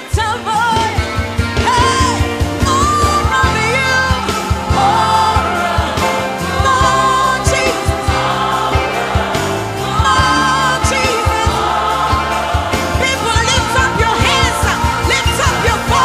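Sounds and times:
bass: 0.0s - 16.0s
steady drum beat: 0.0s - 16.0s
gospel singing with choir: 1.6s - 16.0s.

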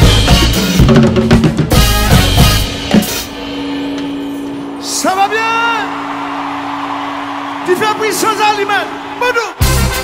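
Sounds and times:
drum kit playing: 0.0s - 4.9s, 9.6s - 10.0s.

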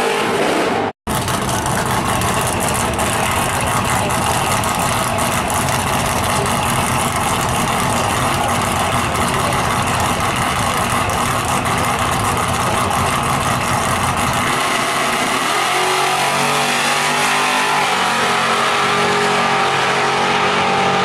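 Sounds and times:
drag race car engine: 0.0s - 21.0s.

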